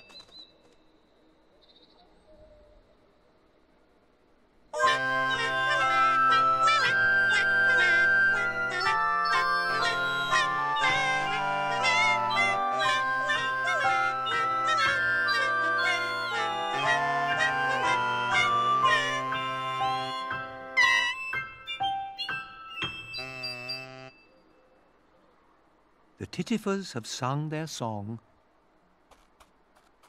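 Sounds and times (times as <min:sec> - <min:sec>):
reedy wind instruments trilling: 0:04.8 - 0:21.2, 0:22.1 - 0:24.2.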